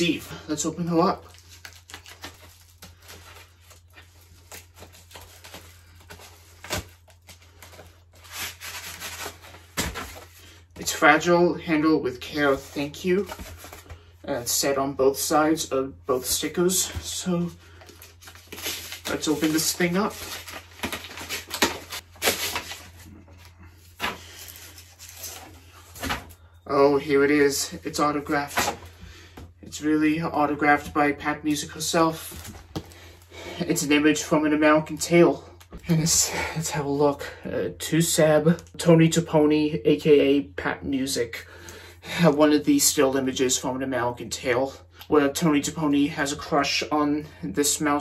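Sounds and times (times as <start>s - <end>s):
plastic crinkling: 0.6s - 10.6s, 17.0s - 26.4s
cardboard envelope tearing: 1.3s - 10.5s, 17.7s - 23.1s
paper rustling: 16.8s - 26.4s.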